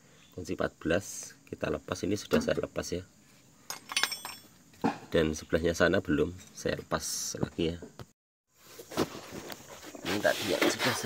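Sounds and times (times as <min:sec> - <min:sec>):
spanner scraping and rustling: 0:03.3 - 0:04.8.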